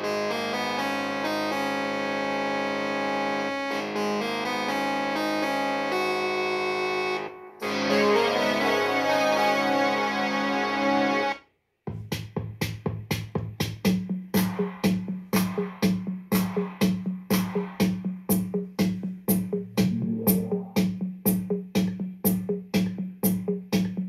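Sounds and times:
synth and keyboard song: 0.0s - 11.5s, 19.8s - 20.8s
drum machine beat: 11.8s - 24.0s
steady bass note: 19.6s - 21.0s.

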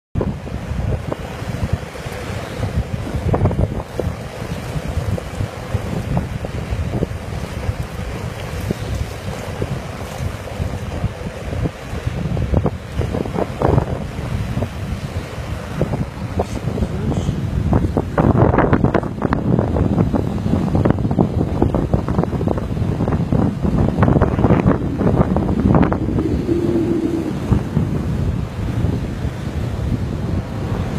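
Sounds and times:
wind buffeting microphone: 0.2s - 30.9s.

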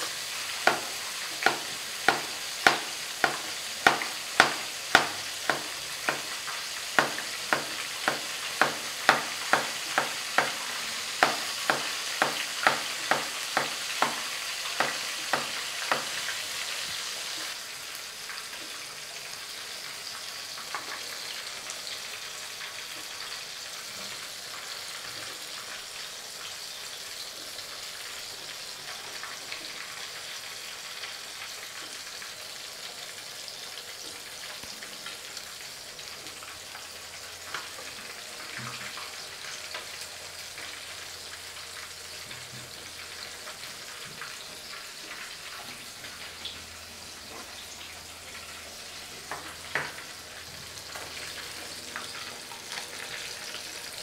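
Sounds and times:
fish sizzling in oil: 0.0s - 54.0s
sharp evenly spaced taps: 0.6s - 6.3s, 7.0s - 10.6s, 11.2s - 14.2s.

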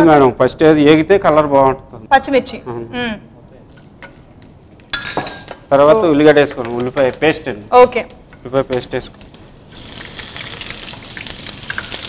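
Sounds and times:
utensils clinking against dishes: 4.9s - 7.2s.

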